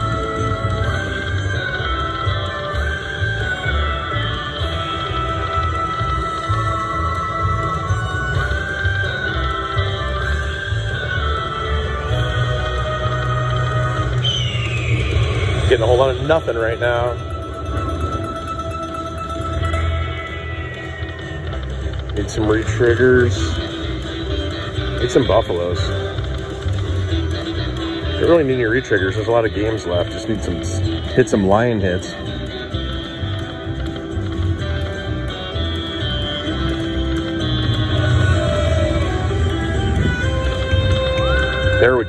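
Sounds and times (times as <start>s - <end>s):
slot machine bonus music: 14.9s - 42.0s.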